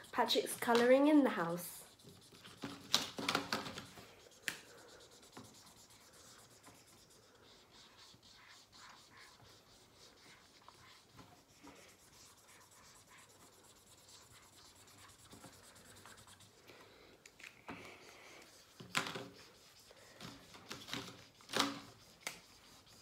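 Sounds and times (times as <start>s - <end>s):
marker scratching on whiteboard: 0.0s - 16.6s, 17.8s - 23.0s.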